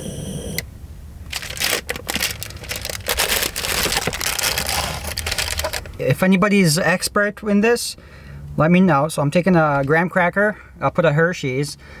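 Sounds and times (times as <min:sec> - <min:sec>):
food wrappers crinkling: 0:01.3 - 0:06.0.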